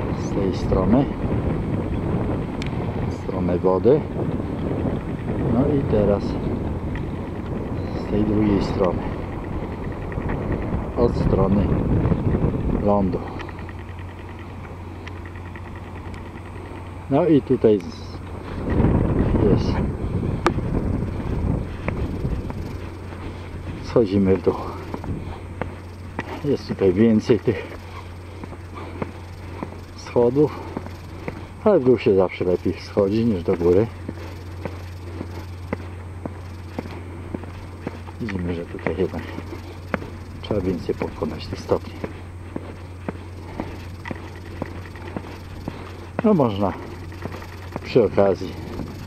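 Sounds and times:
wind rumbling on microphone: 0.0 - 49.0
sharp clicks: 13.1 - 17.0, 42.8 - 49.0
footsteps on concrete stairs: 27.5 - 32.0, 33.5 - 48.9.

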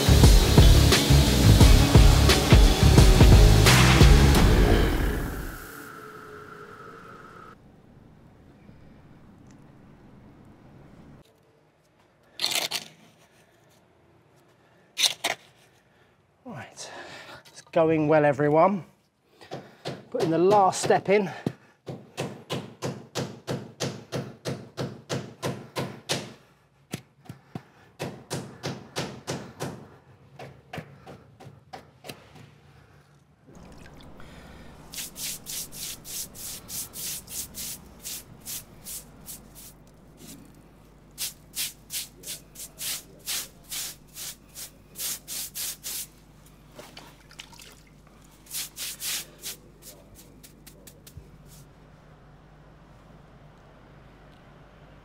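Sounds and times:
stiff brush scrubbing stone: 34.8 - 46.2, 48.3 - 51.7.

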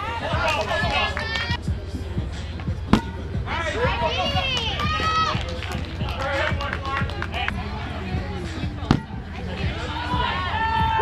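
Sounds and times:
players shouting calls: 3.0 - 7.8.

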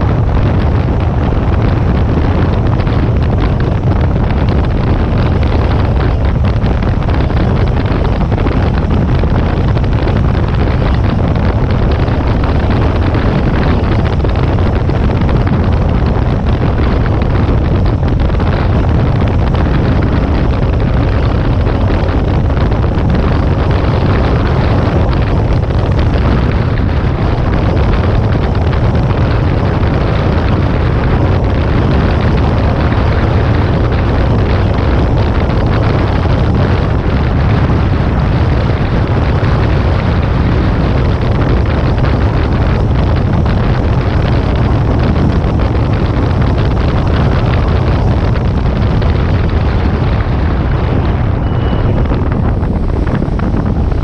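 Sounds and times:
jet ski engine: 0.0 - 54.0
wind buffeting microphone: 0.0 - 54.0.

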